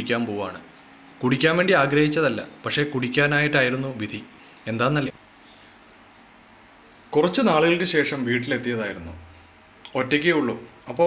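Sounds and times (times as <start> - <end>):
low room hiss: 0.0 - 11.0
insect trilling: 0.7 - 11.0.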